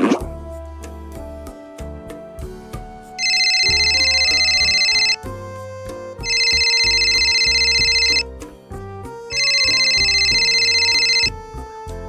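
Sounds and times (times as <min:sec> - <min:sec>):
background music: 0:00.0 - 0:12.0
telephone ringing: 0:03.2 - 0:05.2, 0:06.2 - 0:08.2, 0:09.3 - 0:11.3.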